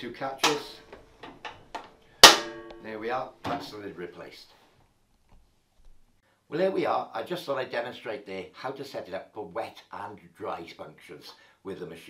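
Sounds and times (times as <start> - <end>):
metal drum ringing: 2.2 - 2.9.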